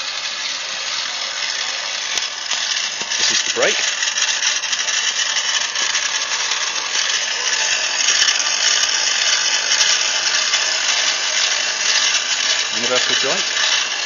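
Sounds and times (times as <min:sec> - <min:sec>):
drill motor whirring: 0:00.0 - 0:14.0.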